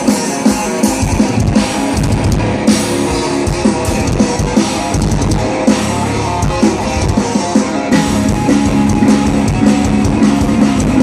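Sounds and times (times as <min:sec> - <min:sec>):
rock band playing: 0:00.0 - 0:11.0
drum hits: 0:00.8 - 0:11.0.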